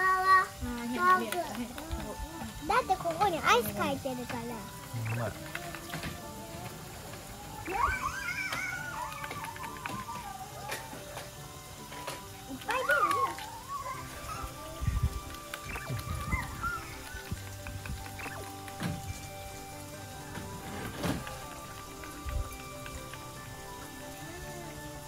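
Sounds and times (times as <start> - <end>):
background music with held notes: 0.0 - 25.0
child squealing excitedly: 7.6 - 11.0, 12.7 - 14.7, 16.1 - 17.2.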